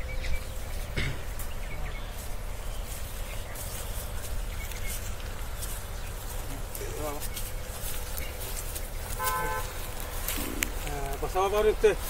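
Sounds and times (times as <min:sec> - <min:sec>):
low steady rumble: 0:00.0 - 0:12.0
short horn-like toot: 0:09.2 - 0:09.8.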